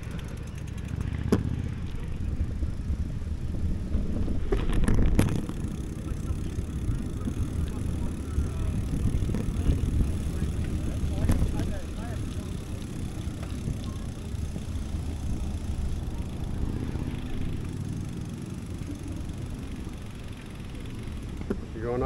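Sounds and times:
bicycle tyres rumbling on pavement: 0:00.0 - 0:22.0
wind buffeting microphone: 0:02.0 - 0:18.3.

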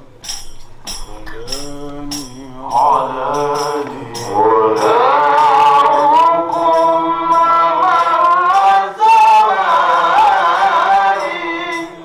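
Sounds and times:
jingling percussion beat: 0:00.0 - 0:12.0
men chanting a hymn: 0:01.0 - 0:12.0.

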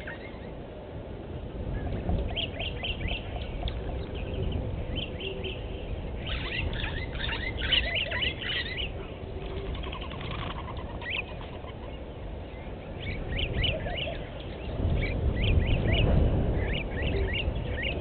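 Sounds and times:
birds chirping: 0:00.0 - 0:18.0
steady low rumble: 0:00.0 - 0:18.0.

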